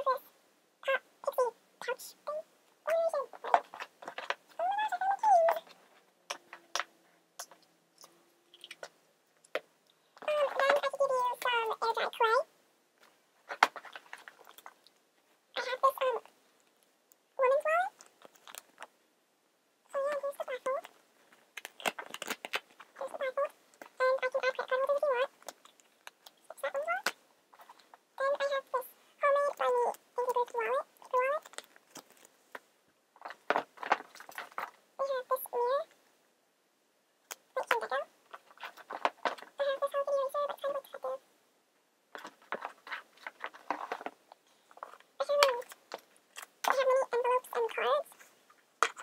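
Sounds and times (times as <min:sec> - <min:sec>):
high-pitched vocal calls: 0:07.4 - 0:08.9.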